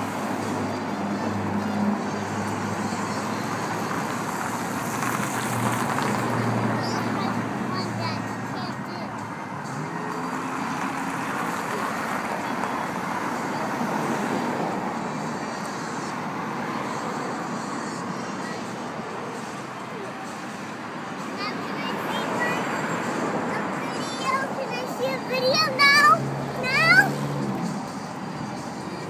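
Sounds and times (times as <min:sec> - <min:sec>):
road traffic going by: 0:00.0 - 0:29.0.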